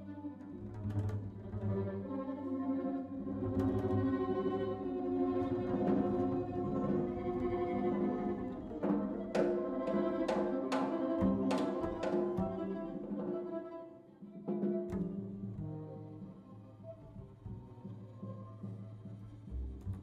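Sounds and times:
live jazz ensemble: 0:00.0 - 0:20.0
violin bowing held notes: 0:01.5 - 0:19.2.

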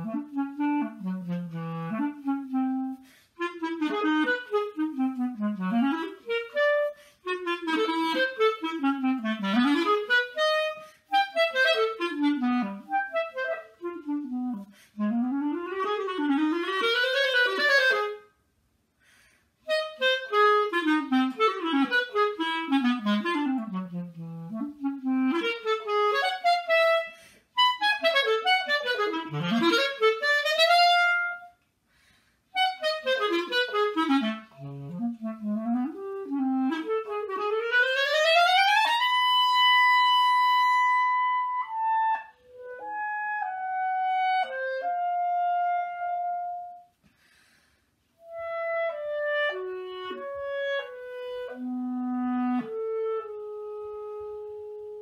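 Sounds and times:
solo clarinet playing: 0:00.0 - 0:18.4, 0:19.6 - 0:31.7, 0:32.5 - 0:47.0, 0:48.0 - 0:55.0.

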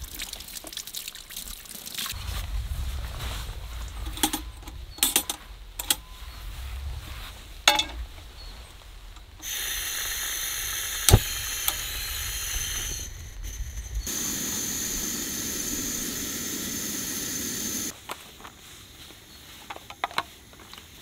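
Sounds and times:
low flame rumble: 0:02.2 - 0:09.4
gas hissing from stove burner: 0:09.3 - 0:17.9
sharp igniter click: 0:09.4 - 0:15.0.

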